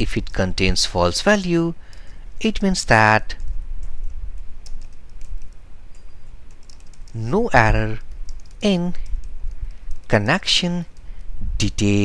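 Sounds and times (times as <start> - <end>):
low steady hum: 0.0 - 12.0
keyboard typing clicks: 3.4 - 7.3, 8.0 - 11.3.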